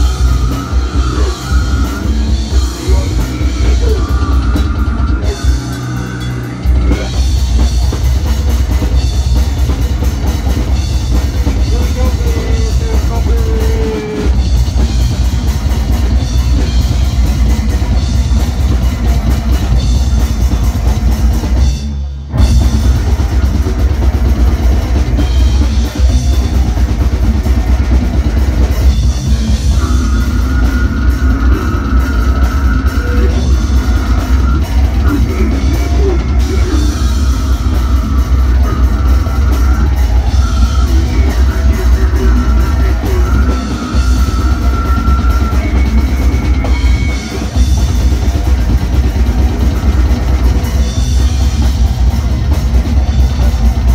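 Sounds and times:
death metal band playing: 0:00.0 - 0:53.9.

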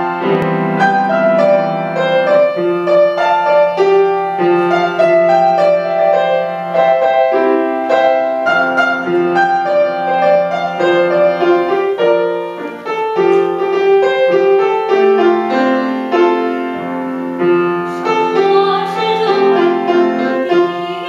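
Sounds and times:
grand piano playing: 0:00.0 - 0:21.0.

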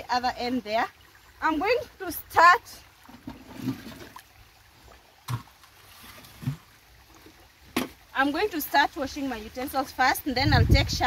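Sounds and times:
faint stream trickling: 0:00.0 - 0:11.0.

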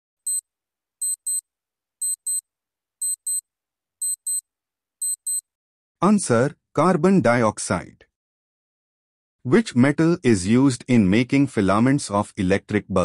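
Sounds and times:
clock ticking: 0:01.0 - 0:01.4, 0:02.0 - 0:02.4, 0:03.0 - 0:03.4, 0:04.0 - 0:04.4.

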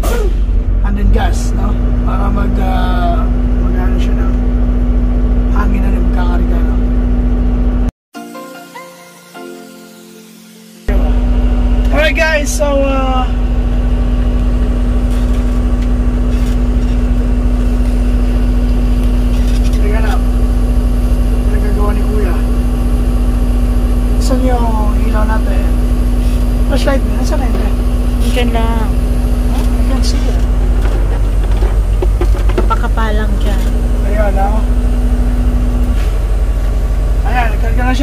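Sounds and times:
diesel engine droning: 0:00.0 - 0:07.9, 0:10.8 - 0:38.0.

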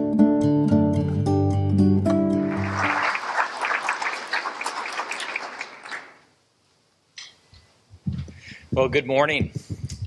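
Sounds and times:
acoustic guitar music: 0:00.0 - 0:03.0
audience applause: 0:02.4 - 0:06.3.

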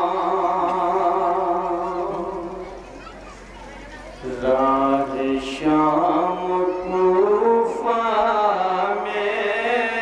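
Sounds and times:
man chanting into a microphone: 0:04.2 - 0:10.0.

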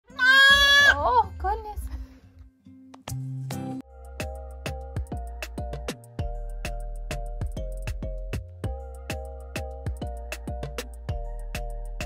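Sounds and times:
goat kid bleating: 0:00.1 - 0:01.1.

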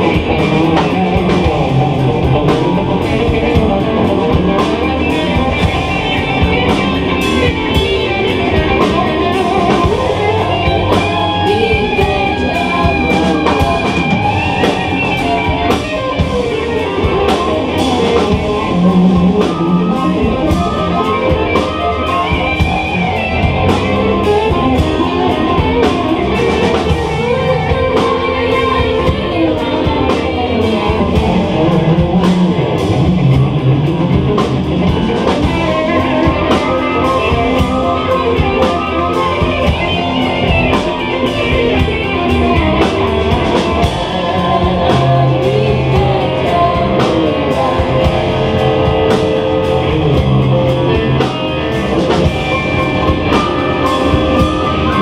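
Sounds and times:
bass guitar: 0:00.0 - 0:55.0
drums steady beat: 0:00.0 - 0:55.0
electric guitar: 0:00.0 - 0:55.0.

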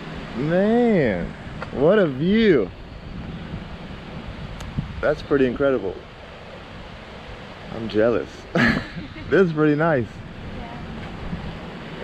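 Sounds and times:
wind noise on microphone: 0:00.0 - 0:07.7, 0:08.6 - 0:12.0.

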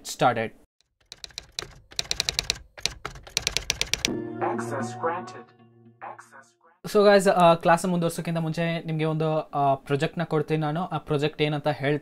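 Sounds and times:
computer keyboard typing: 0:00.8 - 0:04.1.

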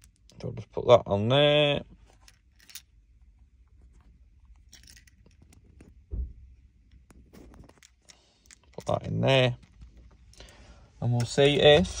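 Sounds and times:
dull low thump: 0:06.0 - 0:06.6
hands handling car key clicks: 0:06.9 - 0:10.6.

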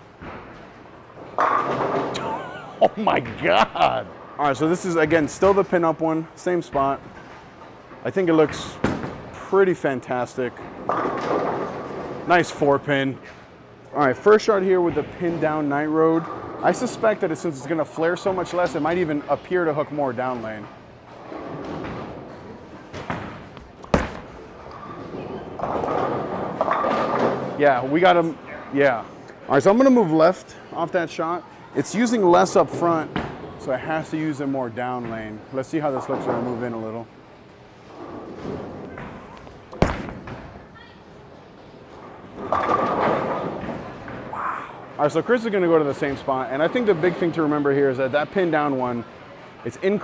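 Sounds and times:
bowling ball thud on lane: 0:23.0 - 0:24.4, 0:39.7 - 0:40.5
bowling pins crashing: 0:23.0 - 0:24.5, 0:39.7 - 0:40.6.

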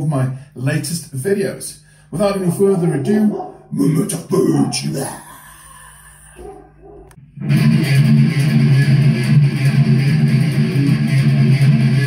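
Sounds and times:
distorted electric guitar riff: 0:07.2 - 0:12.0.

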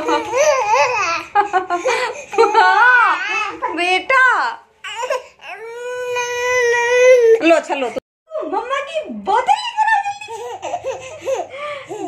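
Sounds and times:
baby giggling: 0:00.0 - 0:03.7.

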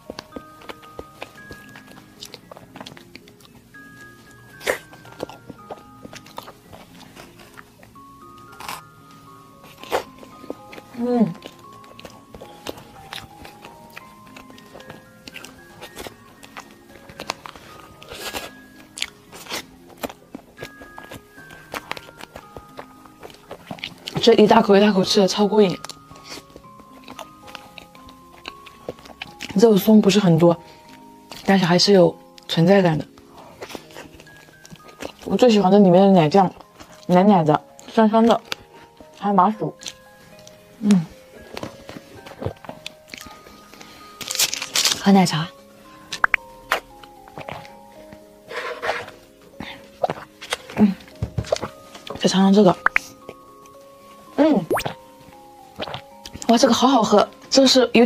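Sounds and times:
soft background music: 0:00.0 - 0:58.0
mouth sounds of eating: 0:49.6 - 0:51.7, 0:55.8 - 0:56.9
spoon clicks and eating sounds: 0:54.7 - 0:55.0.

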